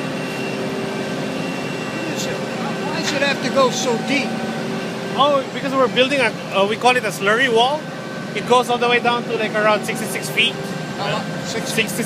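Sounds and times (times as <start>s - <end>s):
heavy machinery engine drone: 0.0s - 12.0s
held whining tones: 0.0s - 12.0s.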